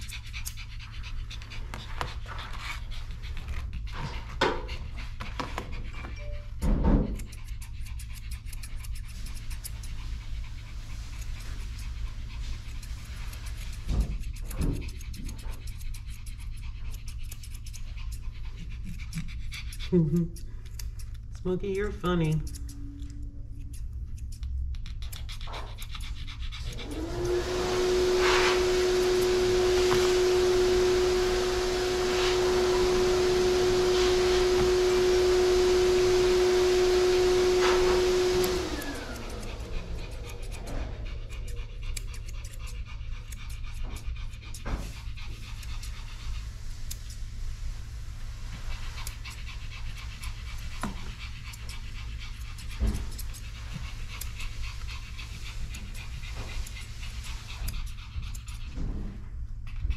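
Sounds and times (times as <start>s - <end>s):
dog panting: 0.0s - 59.9s
electric blower motor running: 26.8s - 41.2s.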